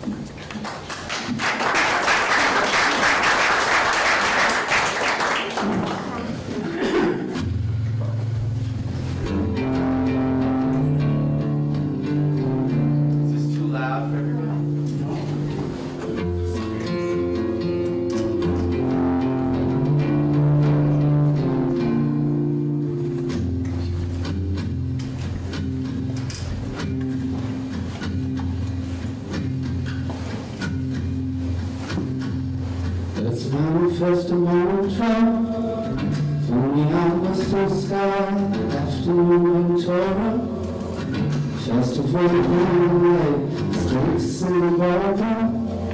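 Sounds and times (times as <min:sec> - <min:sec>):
acoustic guitar playing: 0:06.0 - 0:45.9
low bass line: 0:07.4 - 0:25.0
man singing: 0:33.2 - 0:45.9.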